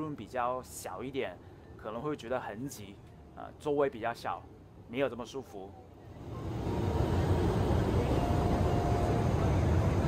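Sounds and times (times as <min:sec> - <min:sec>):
airliner cabin engine rumble: 0:06.1 - 0:10.0.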